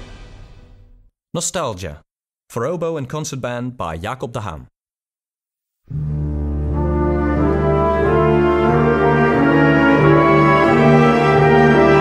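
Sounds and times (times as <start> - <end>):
concert band slow low chords: 5.9 - 12.0.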